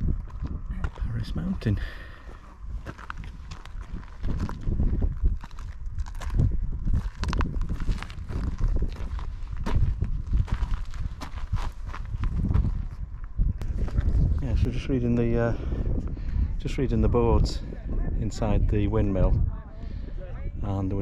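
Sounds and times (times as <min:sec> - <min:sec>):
wind rumble on microphone: 0:00.0 - 0:21.0
footsteps on gravel: 0:00.1 - 0:14.4.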